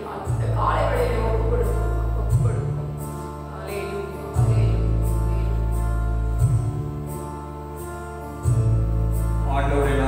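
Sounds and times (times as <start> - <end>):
deep sustained bass notes: 0.0 - 10.0.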